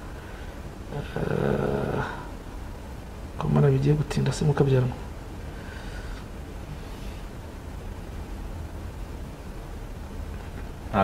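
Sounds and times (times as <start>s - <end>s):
man humming: 0.9s - 2.2s.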